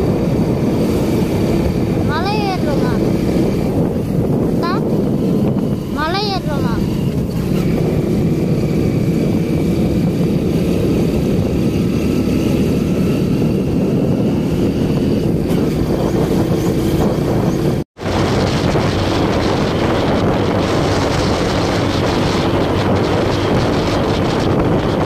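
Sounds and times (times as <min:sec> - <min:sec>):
motorcycle engine running: 0:00.0 - 0:25.0
wind rumble on microphone: 0:00.0 - 0:25.0.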